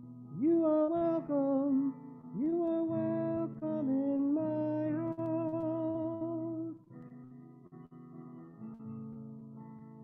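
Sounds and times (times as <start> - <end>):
person singing slow melody: 0.0 - 7.2
acoustic guitar: 0.0 - 10.0.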